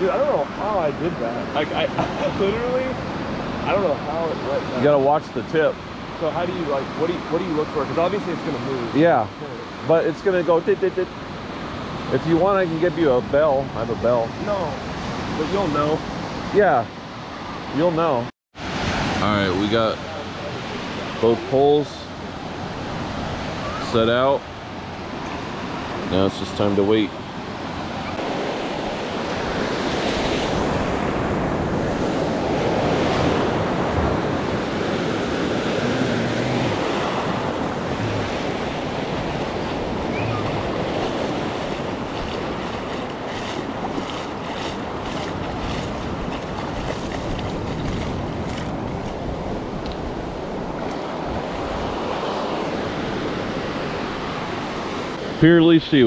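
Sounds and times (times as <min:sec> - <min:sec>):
ocean surf breaking on beach: 0:00.0 - 0:56.0.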